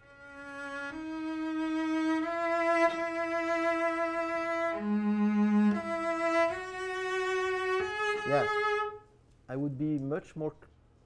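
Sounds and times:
cello bowed slowly: 0:00.0 - 0:09.1
man speaking: 0:08.2 - 0:08.5, 0:09.5 - 0:10.7.

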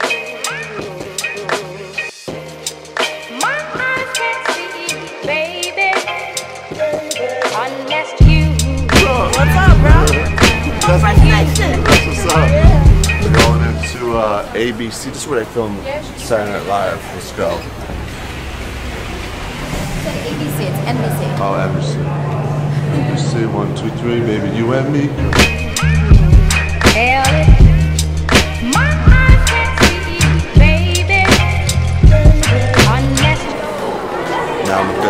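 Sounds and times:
pop song with bass and drums: 0:00.0 - 0:14.2, 0:25.2 - 0:33.5
city street traffic rumble: 0:08.3 - 0:35.0.

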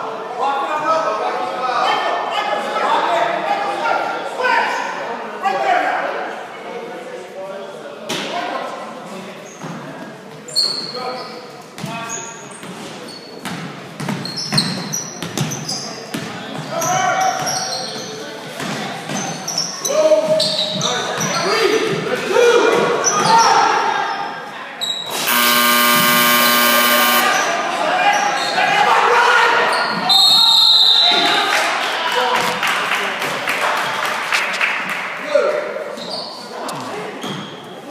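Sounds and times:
sneaker squeaks: 0:10.5 - 0:11.4, 0:12.0 - 0:15.8, 0:17.2 - 0:18.2, 0:20.3 - 0:21.4, 0:36.0 - 0:36.5
buzzer: 0:25.1 - 0:27.4.

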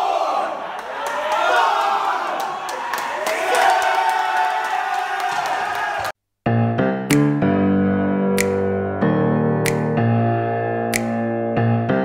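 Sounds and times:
group shouting and chanting: 0:00.0 - 0:06.1
sharp smacks: 0:08.4 - 0:08.7, 0:09.6 - 0:10.0, 0:10.9 - 0:11.3.

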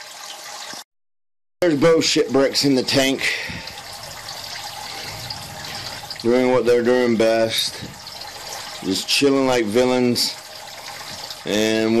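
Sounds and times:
water splashing into tank: 0:02.8 - 0:12.0.

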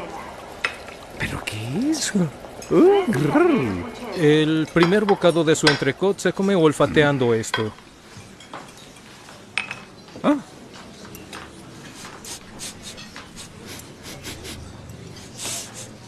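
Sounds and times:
person sniffing: 0:12.0 - 0:14.7, 0:15.3 - 0:16.0.

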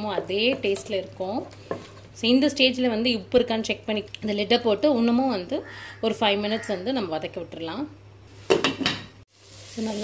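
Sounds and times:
sauce sizzling in oil: 0:09.3 - 0:10.0.

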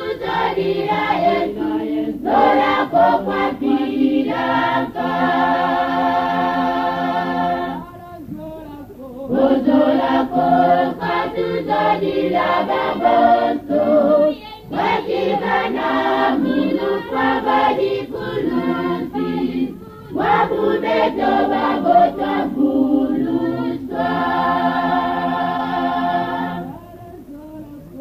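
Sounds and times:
choir singing: 0:00.0 - 0:28.0.

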